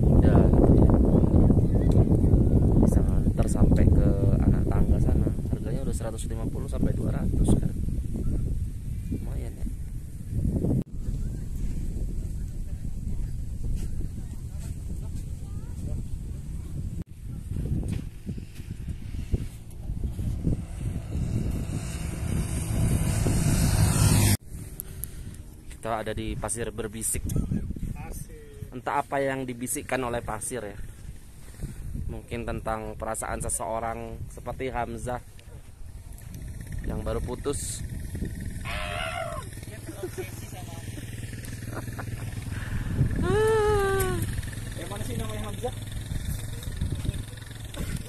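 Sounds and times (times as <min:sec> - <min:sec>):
wind buffeting microphone: 0:00.0 - 0:48.0
low engine hum: 0:09.7 - 0:25.8, 0:39.2 - 0:48.0
vehicle rumbling over sand: 0:17.5 - 0:25.7, 0:36.4 - 0:48.0
people speaking: 0:25.8 - 0:30.8, 0:39.2 - 0:41.0, 0:42.6 - 0:45.8
long drawn-out vocal call: 0:38.6 - 0:39.5.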